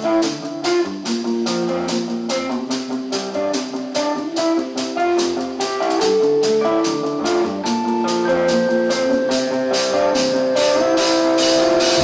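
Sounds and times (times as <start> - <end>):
bass guitar riff: 0.0 - 12.0
distorted electric guitars: 0.0 - 12.0
steady drum beat: 0.0 - 12.0.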